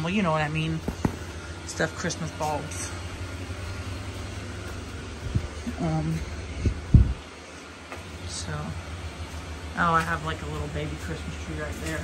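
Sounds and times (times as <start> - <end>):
blower fans humming: 0.0 - 12.0.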